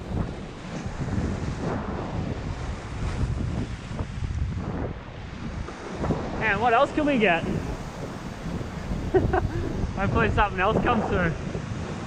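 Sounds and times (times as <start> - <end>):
ocean surf washing over rocks: 0.0 - 12.0
wind buffeting microphone: 0.0 - 12.0.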